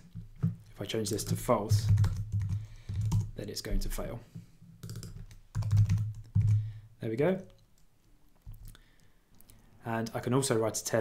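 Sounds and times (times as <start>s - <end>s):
typing on computer keyboard: 1.2s - 3.3s, 4.8s - 6.6s.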